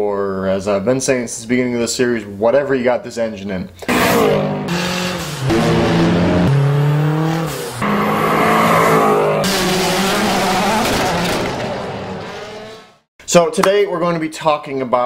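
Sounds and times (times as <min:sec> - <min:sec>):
car rushing past: 0:03.9 - 0:13.0
car engines accelerating: 0:03.9 - 0:13.1.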